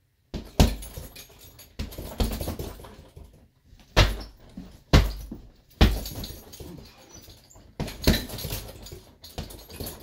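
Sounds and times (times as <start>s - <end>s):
chain jingling: 0.7s - 3.4s, 5.9s - 10.0s
punches on heavy bag: 3.9s - 6.4s.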